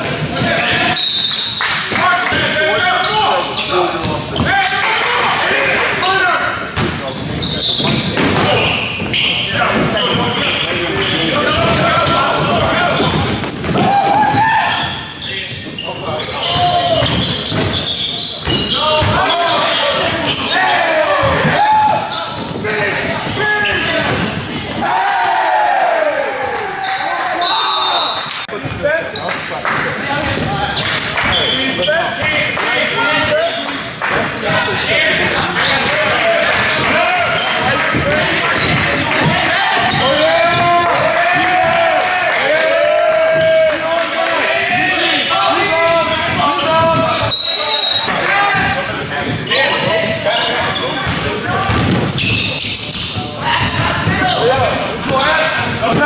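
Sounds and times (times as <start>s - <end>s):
sneakers squeaking: 0.0s - 25.0s, 30.1s - 42.2s, 43.3s - 56.0s
players calling out: 0.0s - 29.3s, 30.1s - 56.0s.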